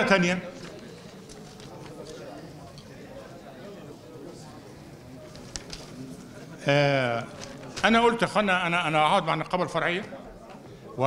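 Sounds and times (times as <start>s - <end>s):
quiet room murmur: 0.0s - 11.0s
papers rustling: 0.5s - 2.9s, 5.2s - 6.3s, 7.2s - 8.1s.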